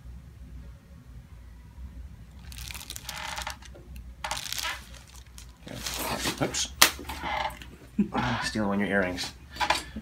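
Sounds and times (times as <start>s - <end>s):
hands rustling hair and paper: 2.4s - 6.7s.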